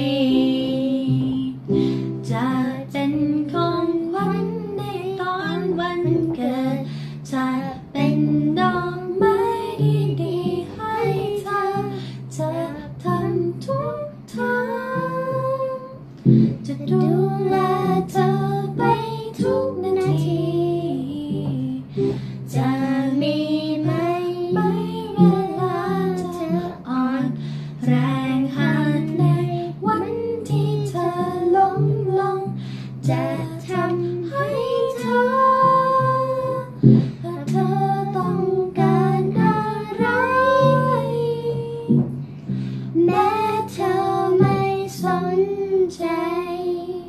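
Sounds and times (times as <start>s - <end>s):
young girl singing: 0.0s - 47.0s
instrumental accompaniment: 7.7s - 46.4s.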